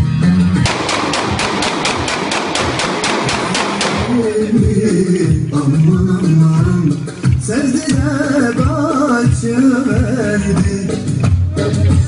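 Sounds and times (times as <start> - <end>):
rapid sharp bangs: 0.7 - 5.2
dance music: 4.0 - 12.0.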